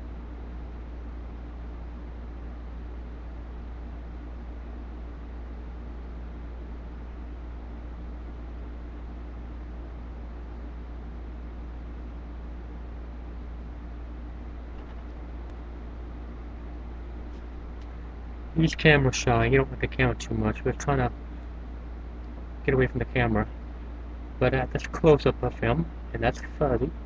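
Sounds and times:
low hum and hiss: 0.0 - 27.0.

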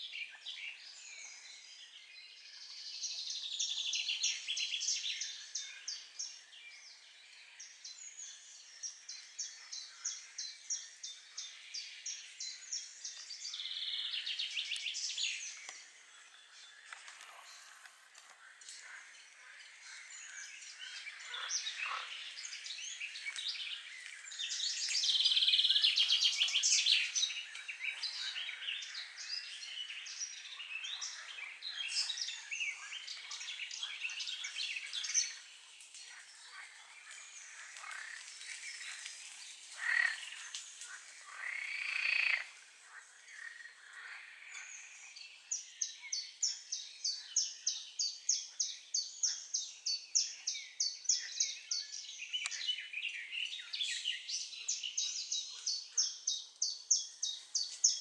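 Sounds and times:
birds chirping and singing: 0.0 - 58.0.

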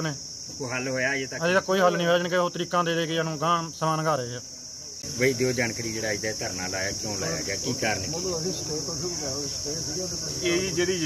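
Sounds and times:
high-pitched insect drone: 0.0 - 11.0
people talking in background: 0.0 - 11.0.

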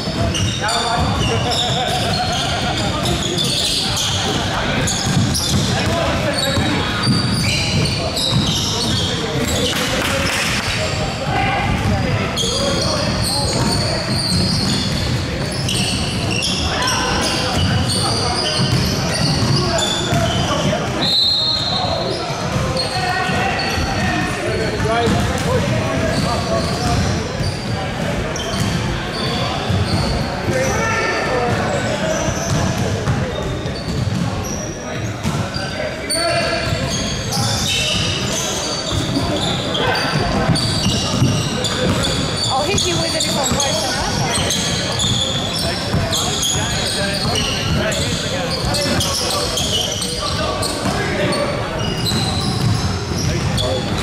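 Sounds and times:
sneaker squeaks: 0.0 - 54.0
basketball bouncing on court: 4.0 - 10.6, 11.7 - 21.0, 22.4 - 23.9, 24.8 - 30.6, 31.5 - 34.6, 35.2 - 35.6, 40.2 - 54.0.

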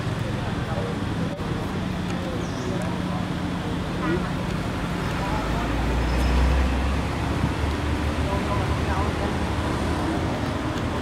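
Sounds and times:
distant voices: 0.0 - 11.0
steady traffic hum: 0.0 - 11.0.

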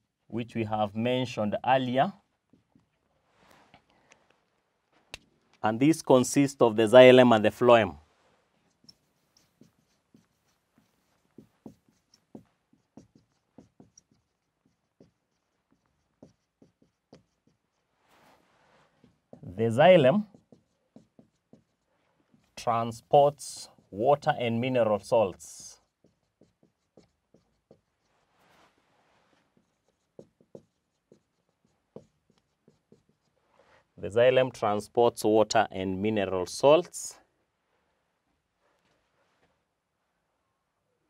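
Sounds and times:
marker writing on whiteboard: 1.8 - 3.8, 7.5 - 33.8.

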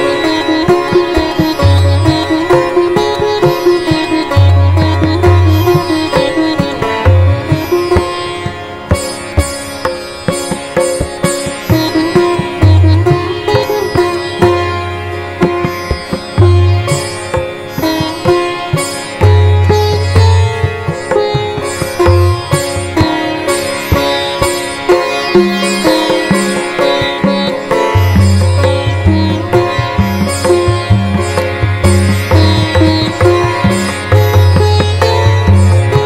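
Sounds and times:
plucked string notes: 0.0 - 36.0.

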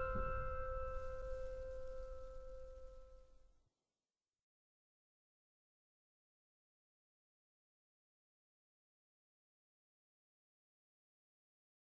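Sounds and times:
piano chord ringing out: 0.0 - 3.1.

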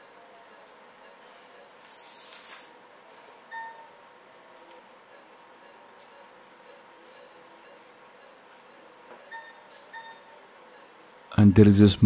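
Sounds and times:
faint electronic beeps: 0.0 - 11.3
low background hum: 0.0 - 12.0.

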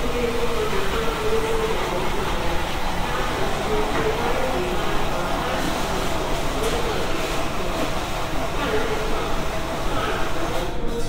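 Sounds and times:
escalator running: 0.0 - 10.6.

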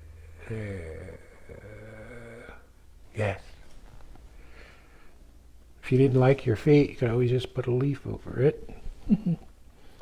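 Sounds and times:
man humming low note: 0.0 - 2.7.

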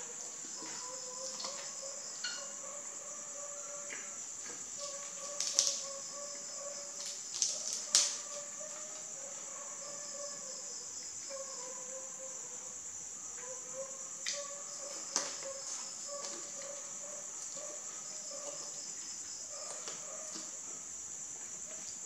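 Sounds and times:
insects chirring: 0.0 - 22.0.

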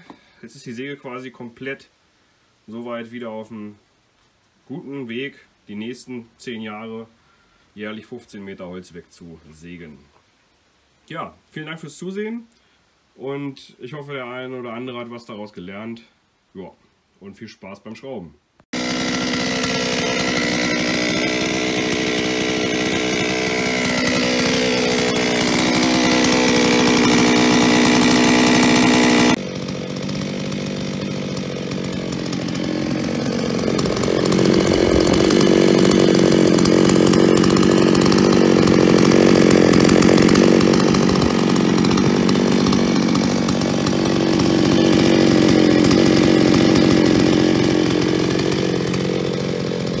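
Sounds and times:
chainsaw idling with metallic clatter: 18.8 - 50.0.

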